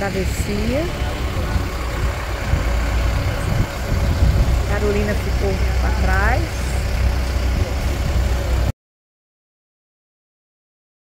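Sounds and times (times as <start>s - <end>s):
low engine rumble: 0.0s - 8.7s.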